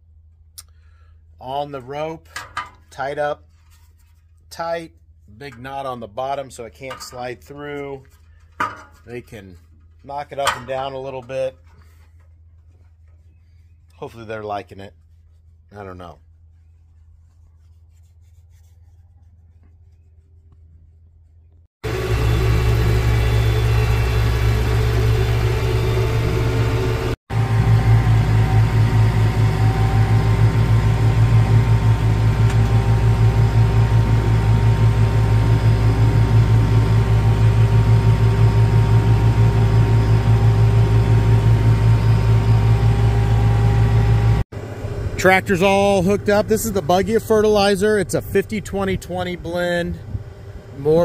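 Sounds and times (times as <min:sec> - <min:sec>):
tractor engine running: 0:21.8 - 0:51.0.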